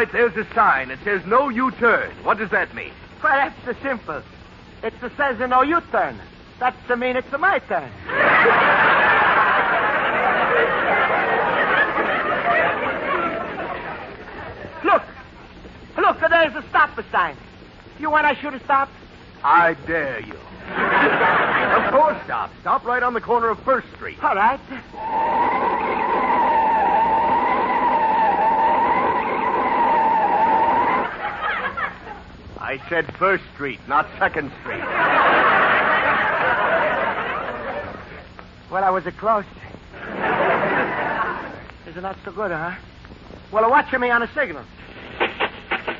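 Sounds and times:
studio audience laughing: 8.0 - 14.8, 20.6 - 22.2, 25.0 - 32.3, 34.7 - 38.2, 40.0 - 41.7.

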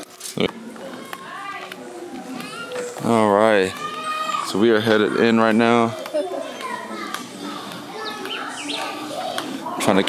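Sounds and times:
kids talking and playing: 0.0 - 10.0.

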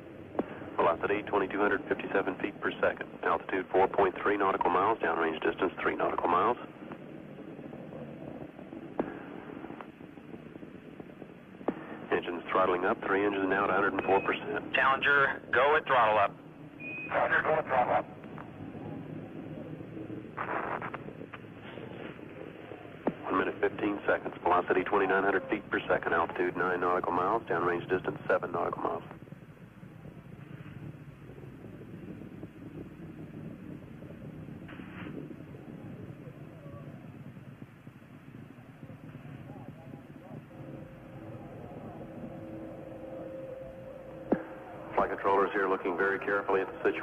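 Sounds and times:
crackling burst: 0.0 - 47.0
radio hiss: 0.0 - 47.0
steady low tone: 0.0 - 47.0
faint indistinct voices: 38.4 - 47.0.

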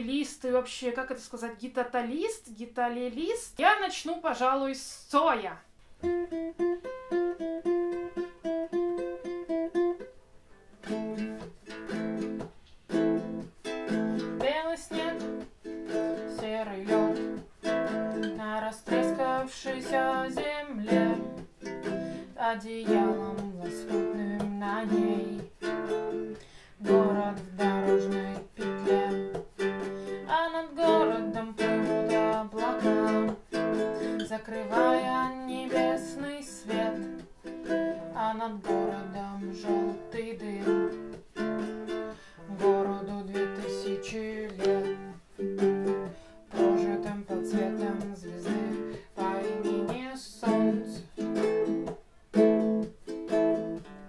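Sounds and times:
guitalele strummed: 6.0 - 54.0.

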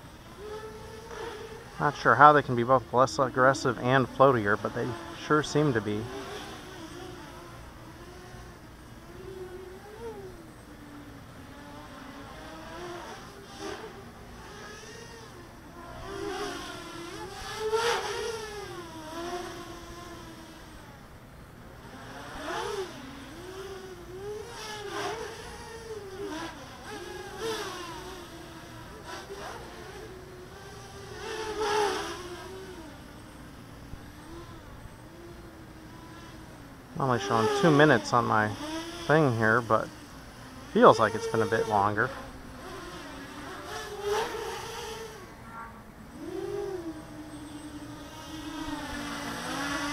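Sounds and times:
quadcopter buzzing whine: 0.0 - 49.9.

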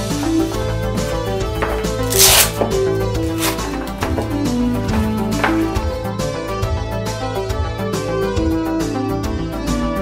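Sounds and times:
background music: 0.0 - 10.0
hook-and-loop closure ripping: 2.0 - 3.8.

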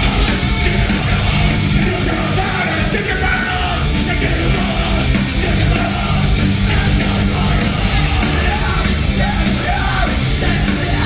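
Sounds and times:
electric guitar: 0.0 - 11.0
punk rock band playing: 0.0 - 11.0
shouted vocals: 0.0 - 11.0.

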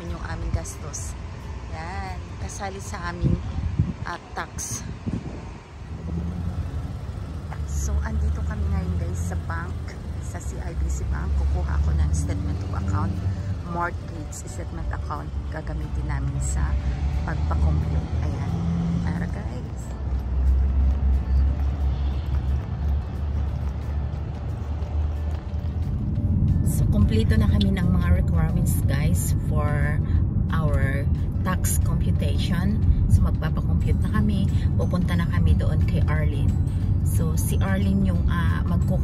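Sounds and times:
vehicle engine rumble: 0.0 - 39.0.

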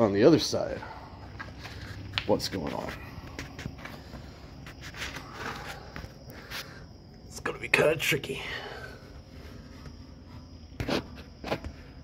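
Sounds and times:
shuffling footsteps: 0.7 - 6.8.

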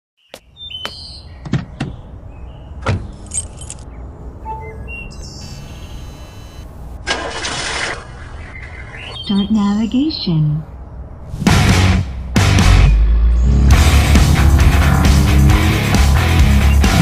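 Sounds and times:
short electronic tones: 4.4 - 6.7.

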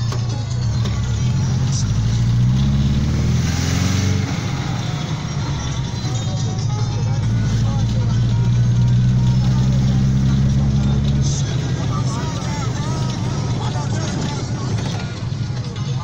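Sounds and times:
car engine and road noise: 0.0 - 16.0
voices: 4.0 - 16.0.

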